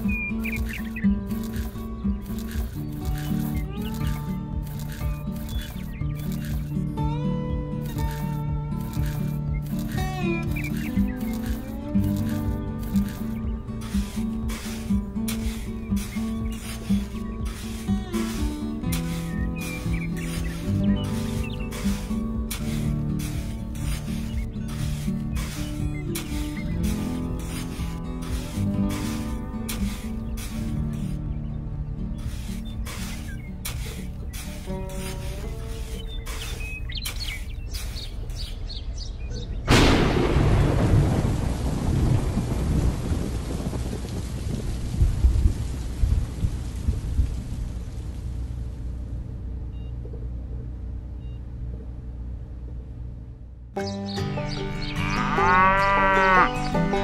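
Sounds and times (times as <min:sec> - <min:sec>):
rain-like hiss: 0:00.0 - 0:07.0, 0:07.6 - 0:31.4, 0:32.2 - 0:38.7, 0:39.7 - 0:49.6
thunder rumbling: 0:39.7 - 0:48.9.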